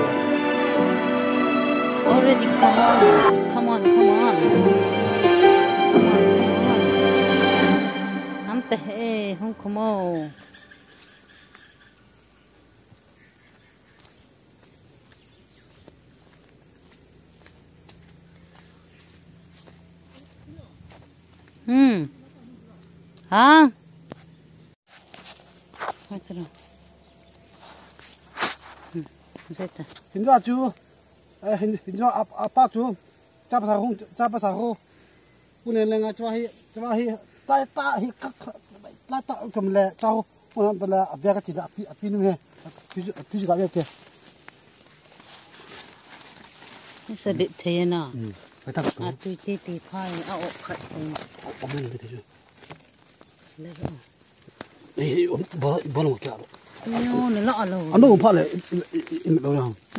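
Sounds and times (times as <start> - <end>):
high-pitched insect chorus: 0.0 - 59.9
person talking: 1.9 - 6.7, 8.0 - 10.4.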